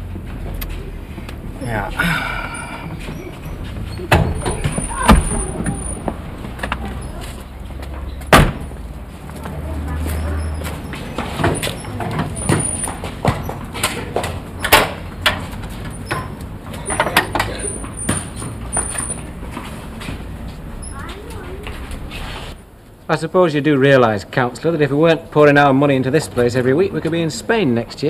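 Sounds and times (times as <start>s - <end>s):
car door slamming: 8.3s - 8.7s.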